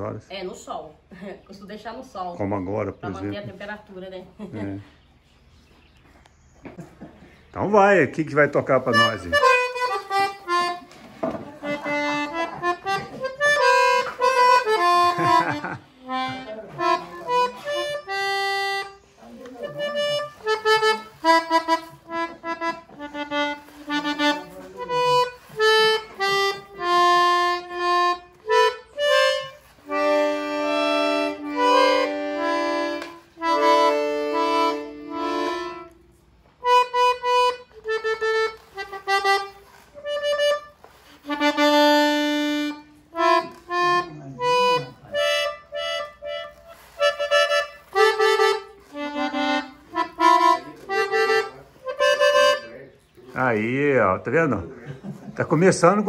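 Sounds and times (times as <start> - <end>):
accordion melody and chords: 1.4 - 4.8, 6.6 - 54.7, 55.4 - 56.0.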